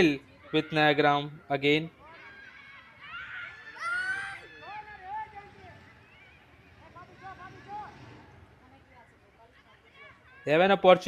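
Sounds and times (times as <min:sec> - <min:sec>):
distant voices shouting: 0:00.0 - 0:08.6
loud rising yell: 0:03.1 - 0:05.3.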